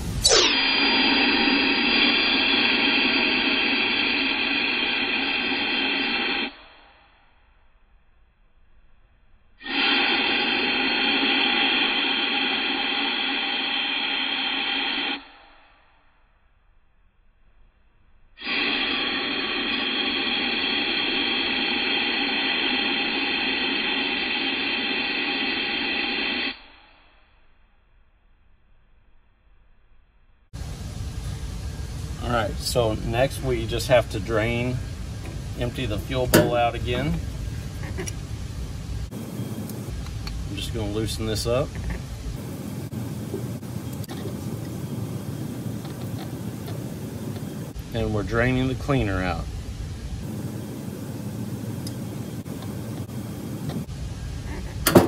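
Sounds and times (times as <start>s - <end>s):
compressed air hiss: 0.0s - 6.6s, 9.6s - 15.2s, 18.4s - 26.6s, 30.6s - 55.0s.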